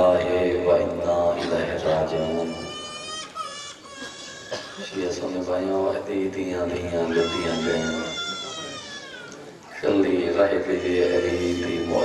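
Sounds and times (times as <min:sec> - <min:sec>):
high-pitched wailing cry: 0:02.2 - 0:04.6, 0:07.1 - 0:09.5, 0:10.8 - 0:12.0.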